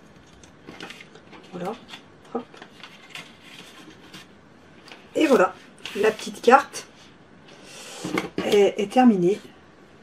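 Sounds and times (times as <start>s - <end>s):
paper card rustling: 0.3s - 6.4s.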